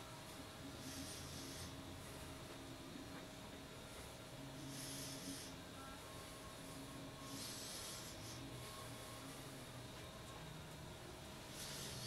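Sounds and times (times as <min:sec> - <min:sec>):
faint hum: 0:00.0 - 0:12.0.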